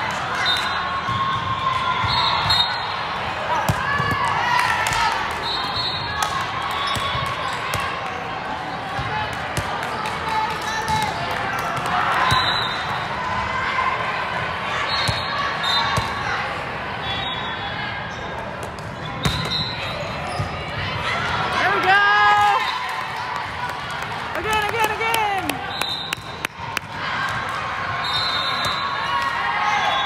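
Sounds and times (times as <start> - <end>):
players and spectators calling: 0.0 - 18.4, 19.0 - 30.0.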